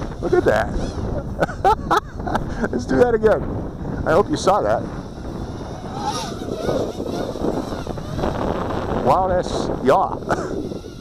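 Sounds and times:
distant quadcopter motors whining: 0.0s - 11.0s
wind buffeting microphone: 0.0s - 11.0s.

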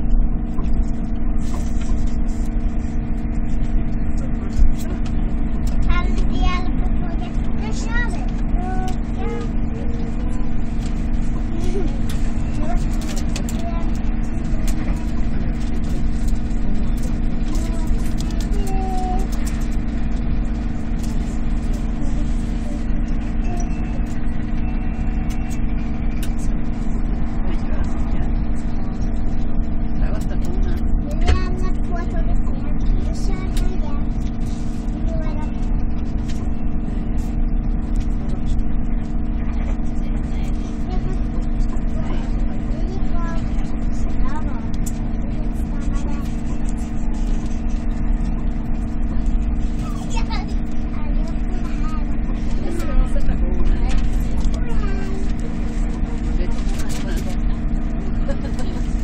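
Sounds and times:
steady tonal hum: 0.0s - 59.0s.

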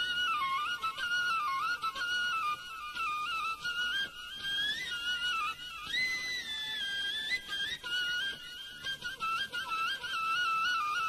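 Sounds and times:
flute-like melody: 0.0s - 11.0s.

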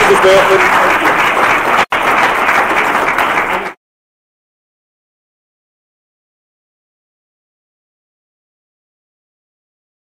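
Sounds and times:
audience applauding: 0.0s - 3.8s.

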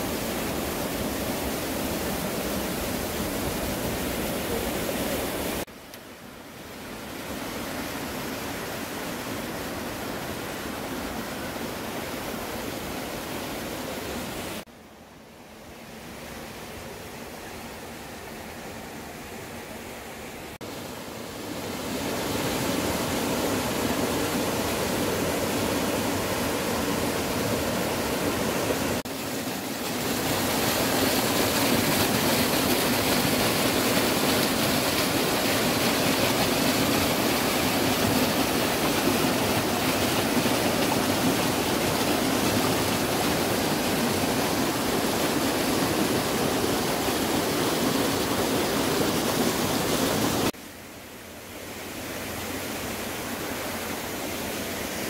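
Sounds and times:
stream rushing over rocks: 0.0s - 14.7s, 15.9s - 55.0s.

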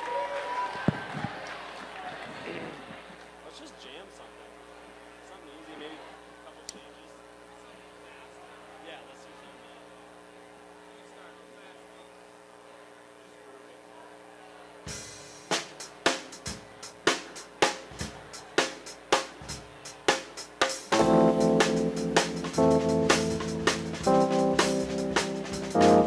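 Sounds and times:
amplifier hum: 3.2s - 14.9s, 20.9s - 26.0s
drum kit beat: 14.9s - 26.0s.

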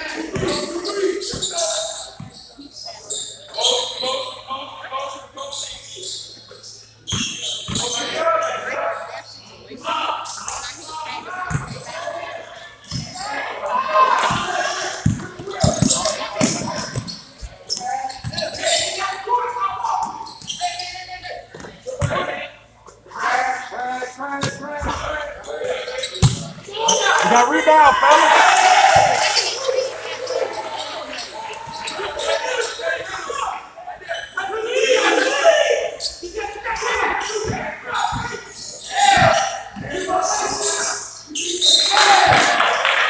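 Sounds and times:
people calling out: 24.9s - 43.0s.

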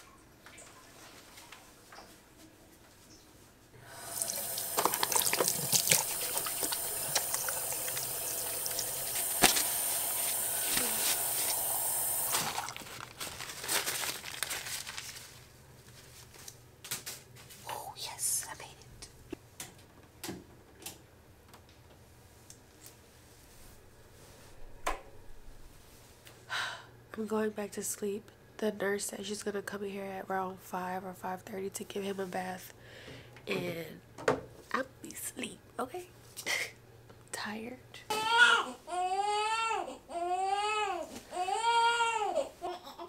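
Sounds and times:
person whispering: 17.6s - 19.1s, 37.3s - 37.8s
newborn baby crying: 38.1s - 43.0s.

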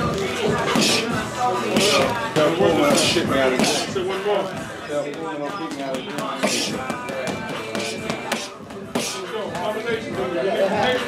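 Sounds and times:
background music: 0.0s - 11.0s
gym voices: 0.0s - 11.0s
boxing gloves punching heavy bag: 0.6s - 4.0s, 6.2s - 9.7s.

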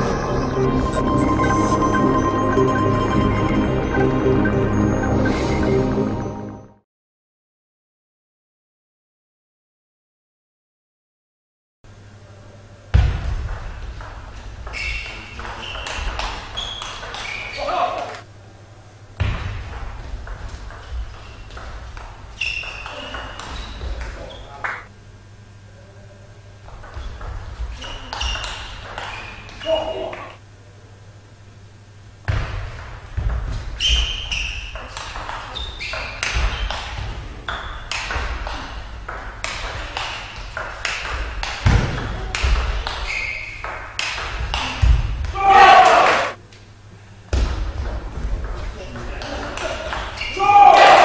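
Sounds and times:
sports hall hum: 0.0s - 6.7s, 11.9s - 51.0s.

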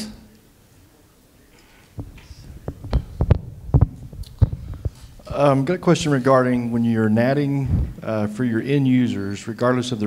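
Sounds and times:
microphone handling thumps: 1.9s - 6.7s, 7.6s - 8.2s.

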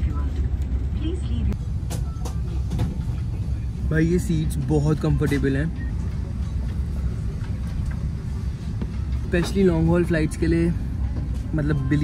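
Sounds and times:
aircraft air system hum: 0.0s - 12.0s.

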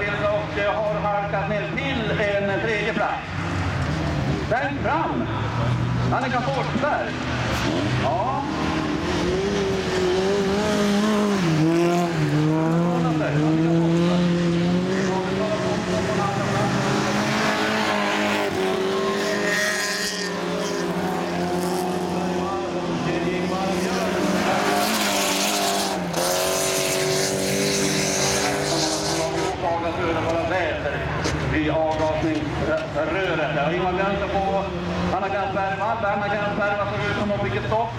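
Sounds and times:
racing car engines revving: 0.0s - 37.9s.

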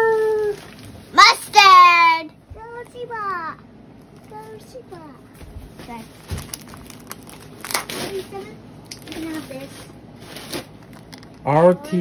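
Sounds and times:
paper and plastic crinkling: 0.0s - 1.1s, 4.0s - 11.5s.

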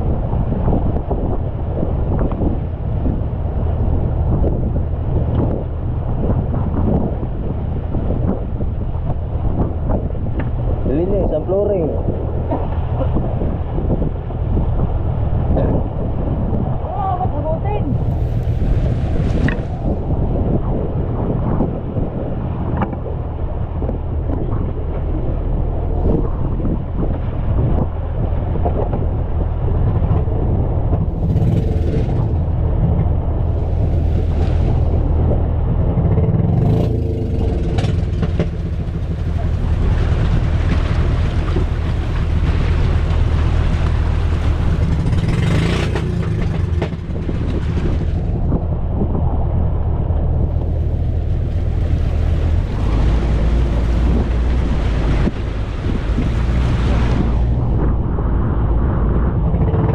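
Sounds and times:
boat engine droning: 0.0s - 59.9s
rushing water: 0.0s - 59.9s
wind buffeting microphone: 0.0s - 59.9s.

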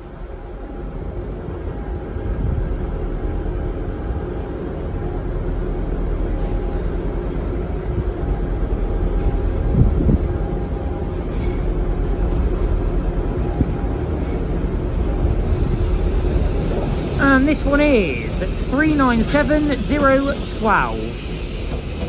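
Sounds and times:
train low rumble: 0.0s - 22.0s.

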